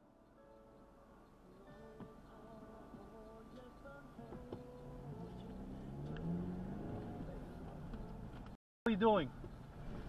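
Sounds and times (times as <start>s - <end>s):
car engine accelerating: 4.3s - 8.6s.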